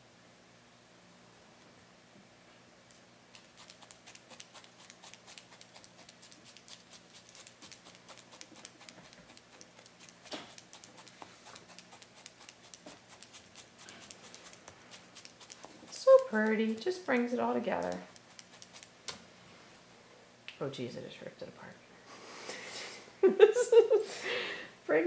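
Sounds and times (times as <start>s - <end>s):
felting needle poking: 3.4s - 18.9s.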